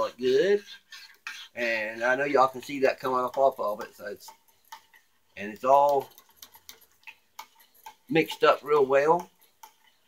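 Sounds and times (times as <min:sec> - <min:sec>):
utensil tapping small metal pot: 0:00.0 - 0:10.0.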